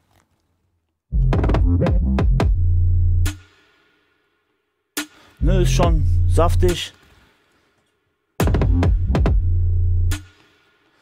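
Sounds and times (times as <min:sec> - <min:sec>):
deep bass and kick drum: 0:01.1 - 0:03.4, 0:05.4 - 0:06.8, 0:08.4 - 0:10.3
hi-hat and snare strikes: 0:01.4 - 0:07.5, 0:08.4 - 0:11.0.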